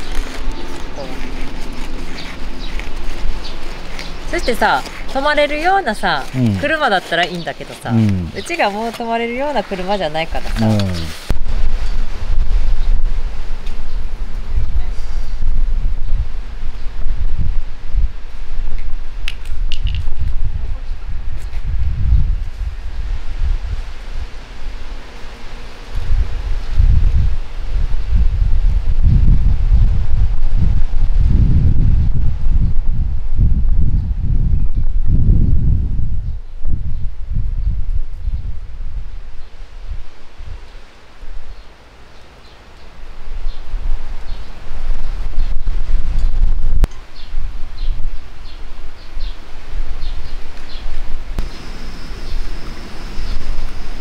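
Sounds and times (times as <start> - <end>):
trees rustling: 0.0 - 54.0
wind buffeting microphone: 11.3 - 24.8, 26.0 - 40.7, 43.2 - 54.0.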